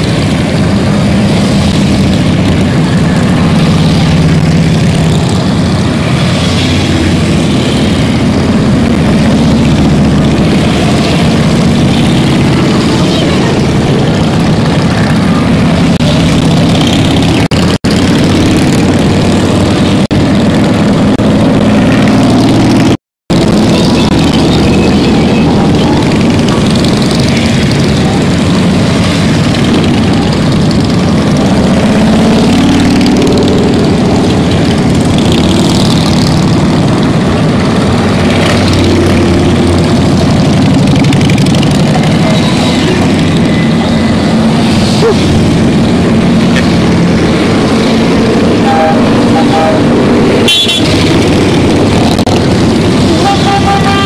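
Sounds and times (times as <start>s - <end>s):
motorcycles riding past: 0.0s - 54.0s.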